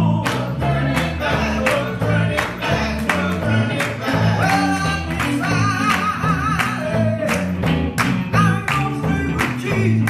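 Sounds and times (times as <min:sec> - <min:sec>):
women singing gospel: 0:00.0 - 0:07.2
instrumental accompaniment with beat: 0:00.0 - 0:10.0
hands clapping: 0:00.2 - 0:10.0.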